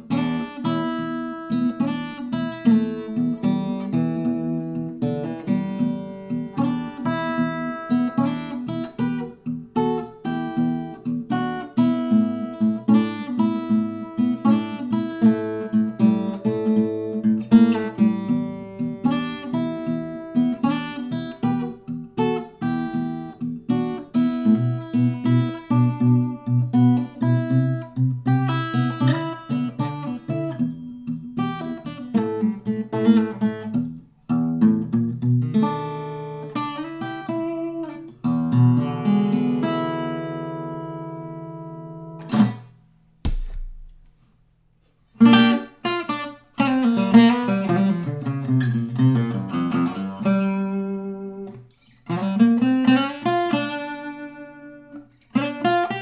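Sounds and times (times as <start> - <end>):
fingerstyle acoustic guitar: 0.0 - 56.0.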